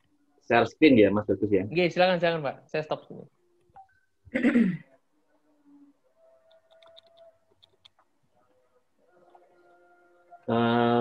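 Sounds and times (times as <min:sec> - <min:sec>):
person clearing throat: 0:04.3 - 0:04.9.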